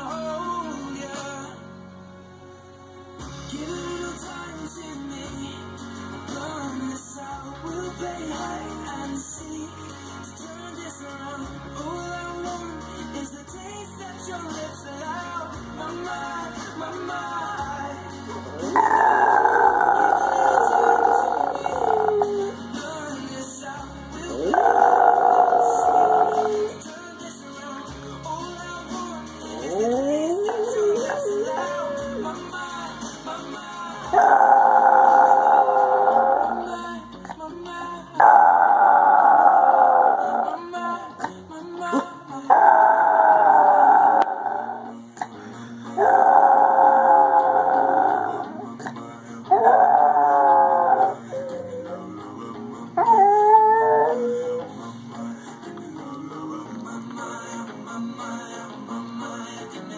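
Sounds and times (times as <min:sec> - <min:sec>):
pop song: 0:00.0 - 0:59.9
dog howling: 0:18.6 - 0:22.6, 0:24.3 - 0:26.8, 0:29.6 - 0:32.4, 0:34.1 - 0:36.8, 0:38.2 - 0:40.7, 0:42.5 - 0:44.9, 0:46.0 - 0:48.6, 0:49.5 - 0:52.2, 0:53.0 - 0:54.7.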